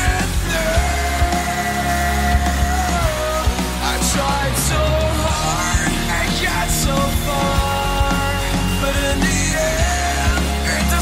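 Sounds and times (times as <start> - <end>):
loud rock music: 0.0 - 11.0.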